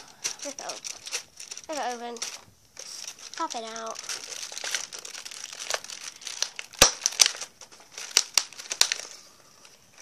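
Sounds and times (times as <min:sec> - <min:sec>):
sharp cracks: 0:00.0 - 0:09.1
cardboard and foil crinkling: 0:00.0 - 0:10.0.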